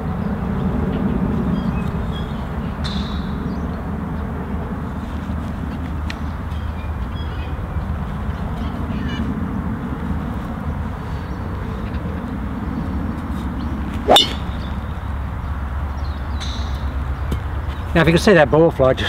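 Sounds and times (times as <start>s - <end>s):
golf club striking ball: 14.0s - 14.7s.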